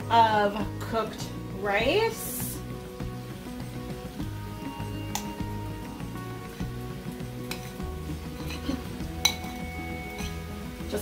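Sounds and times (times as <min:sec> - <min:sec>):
background music with bass line: 0:00.0 - 0:11.0
light sizzling in pan: 0:00.0 - 0:11.0
metal spoon clinking on bowl and pan: 0:07.4 - 0:10.6.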